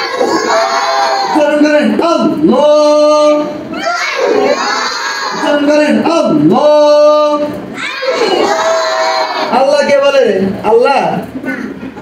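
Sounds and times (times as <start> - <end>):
children chanting in unison: 0.0 - 1.4, 3.7 - 5.5, 7.8 - 9.5.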